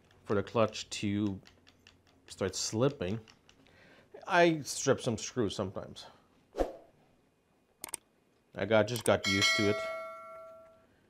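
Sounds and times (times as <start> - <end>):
sharp clicks: 7.8 - 8.1.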